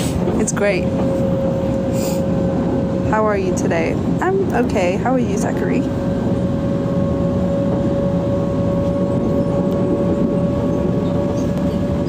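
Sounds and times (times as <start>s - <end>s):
constant hum tone: 0.0s - 12.0s
vehicle running rumble: 0.0s - 12.0s.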